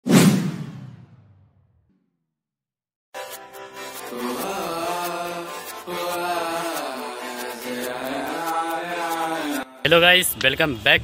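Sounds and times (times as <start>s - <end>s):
whoosh with deep boom: 0.0s - 1.7s.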